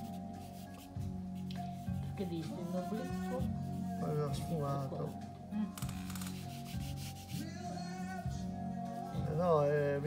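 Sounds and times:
fingertips rubbing on paper: 0.0s - 5.3s, 6.0s - 7.7s
background music: 0.0s - 10.0s.

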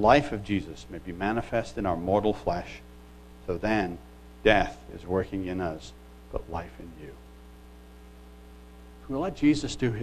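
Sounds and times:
man speaking: 0.0s - 2.8s, 3.5s - 7.2s, 9.1s - 10.0s
electrical mains hum: 0.0s - 10.0s.

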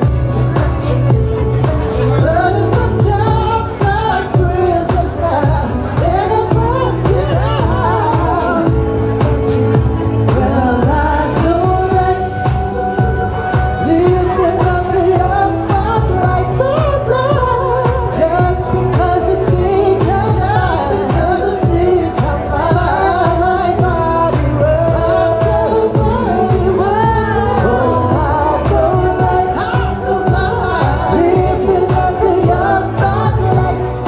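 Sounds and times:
pop accompaniment with steady beat: 0.0s - 34.0s
woman singing into microphone: 0.0s - 34.0s.

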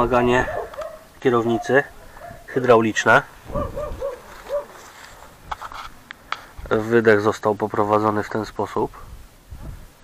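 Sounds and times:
dog whimpering: 3.5s - 4.8s.

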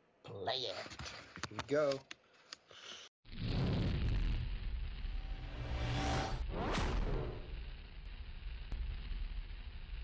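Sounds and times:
low fire-like rumble: 3.3s - 10.0s
whoosh: 5.0s - 7.9s.

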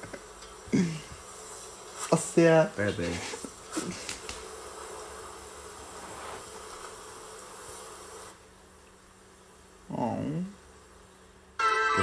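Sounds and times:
ambient hiss: 0.0s - 12.0s.

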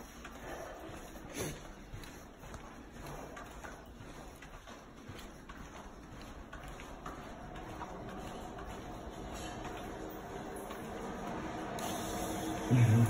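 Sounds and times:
footsteps on carpet: 0.0s - 12.0s.

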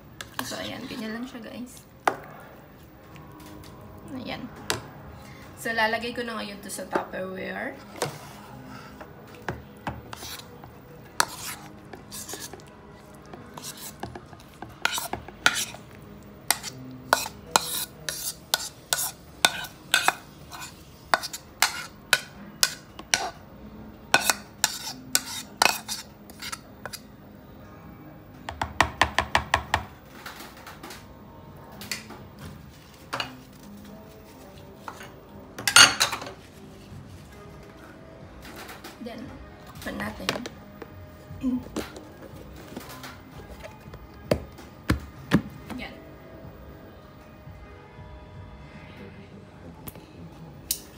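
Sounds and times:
metal spoon scraping a bowl: 10.1s - 23.4s, 24.1s - 27.1s
background music: 33.4s - 50.9s.

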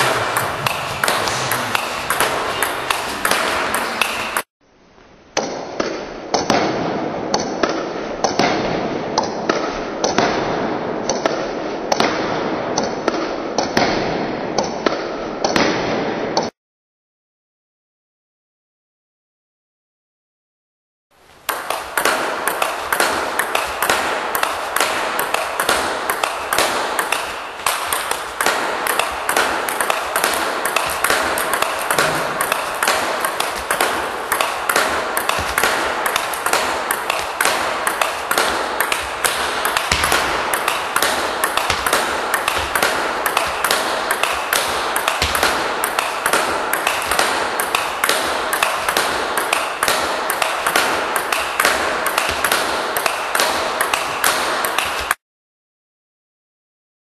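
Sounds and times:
table tennis ball clicks: 21.4s - 55.2s.

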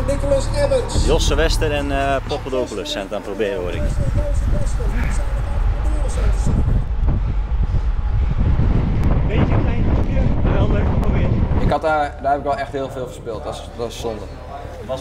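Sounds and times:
wind buffeting microphone: 3.6s - 12.7s.

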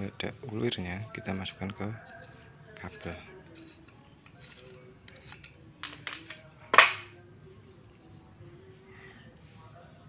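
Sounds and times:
cable connector clicks and scrapes: 2.1s - 6.9s.

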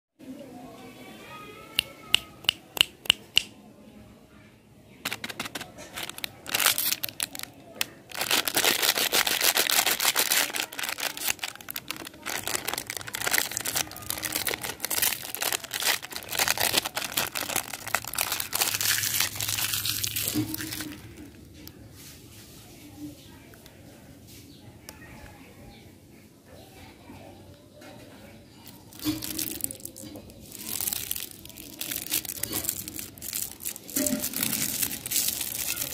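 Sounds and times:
plastic wrapper crinkling: 5.0s - 21.8s, 28.7s - 35.9s.

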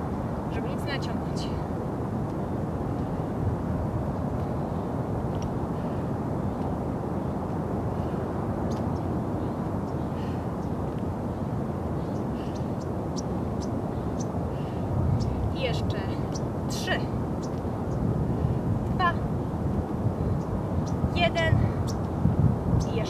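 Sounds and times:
low outdoor rumble: 0.0s - 23.0s.

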